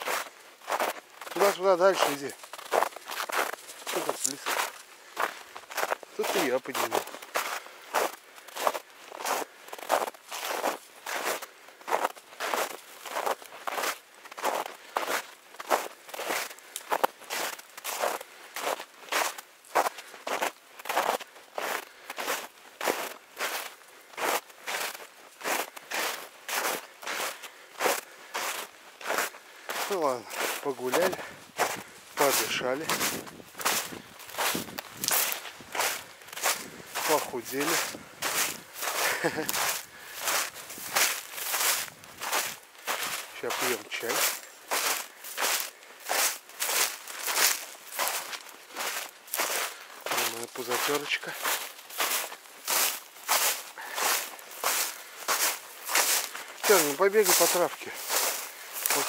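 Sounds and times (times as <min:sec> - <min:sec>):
footsteps crunching in snow: 0:00.0 - 0:59.0.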